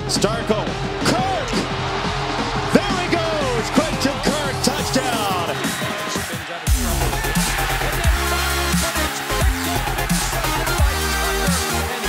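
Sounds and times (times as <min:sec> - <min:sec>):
low bass: 0:06.7 - 0:12.0.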